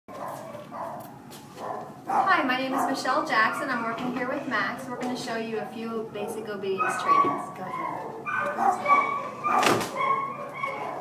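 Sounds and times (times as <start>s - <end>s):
puppy yapping: 0.1s - 3.8s, 6.8s - 11.0s.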